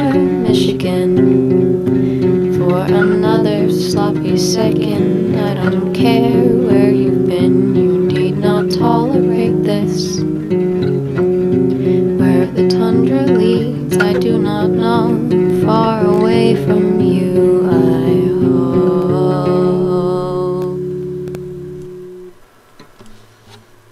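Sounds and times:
acoustic guitar strumming chords: 0.0 - 23.2.

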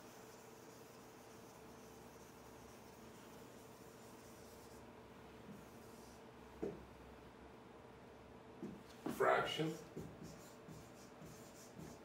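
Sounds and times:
pen scratching on whiteboard: 0.0 - 4.8, 9.7 - 12.0.

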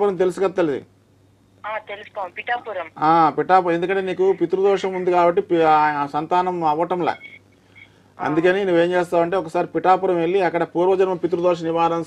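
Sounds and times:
person speaking over telephone: 1.7 - 3.0.

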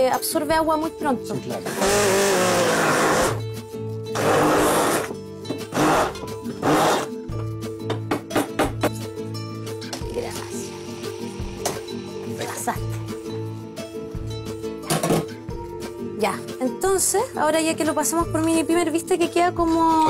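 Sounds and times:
background music: 0.0 - 20.0
immersion blender pureeing: 1.6 - 3.4, 4.1 - 7.1.

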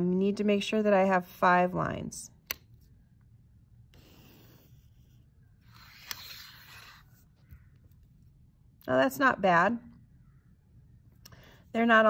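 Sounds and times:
click: 2.4 - 2.7
pen scratching on paper: 3.9 - 7.2
paper and ruler rubbing on desk: 4.0 - 7.2.

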